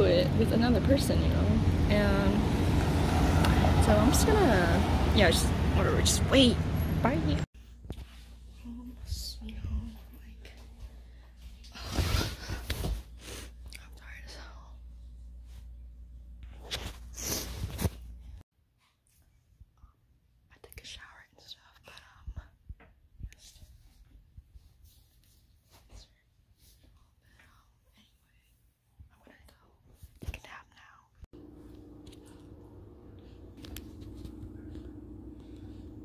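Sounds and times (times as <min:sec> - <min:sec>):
soft whispered speech: 0:08.6 - 0:11.0, 0:13.8 - 0:14.8, 0:20.5 - 0:22.6, 0:23.2 - 0:24.0, 0:26.9 - 0:31.2
steady low hum: 0:31.4 - 0:36.0.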